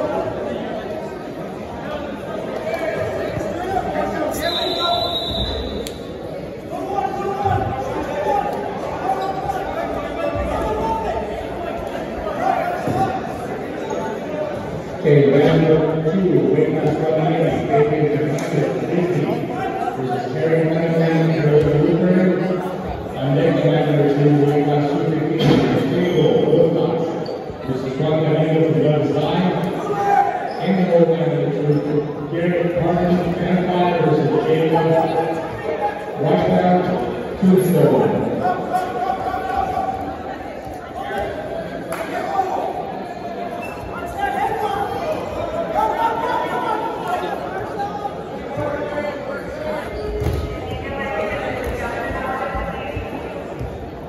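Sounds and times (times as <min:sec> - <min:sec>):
voices echoing in a gymnasium: 0:00.0 - 0:54.0.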